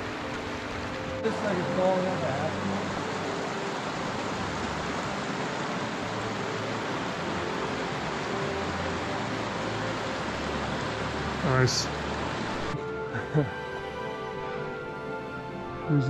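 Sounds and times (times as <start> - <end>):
creek rushing over rocks: 0.0 - 13.1.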